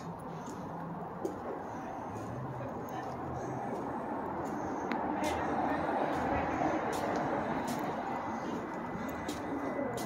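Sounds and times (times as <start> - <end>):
traffic: 0.0 - 10.0
indistinct voices: 1.3 - 10.0.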